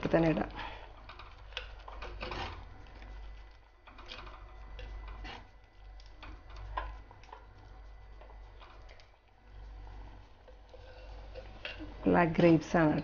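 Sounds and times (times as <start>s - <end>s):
soft squelches of mixture: 0.0s - 13.0s
spoon scraping clay pot: 0.2s - 13.0s.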